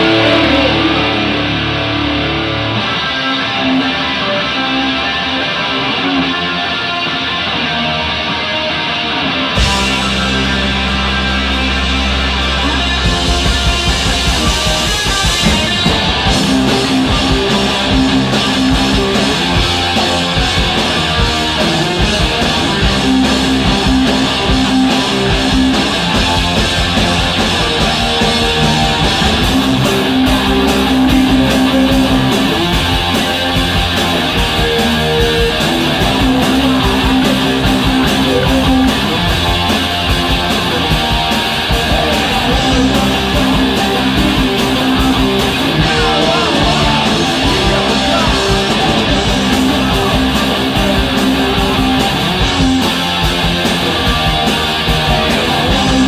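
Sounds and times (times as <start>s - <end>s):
bass guitar: 0.0s - 56.0s
drums: 0.0s - 56.0s
electric guitar: 0.0s - 56.0s.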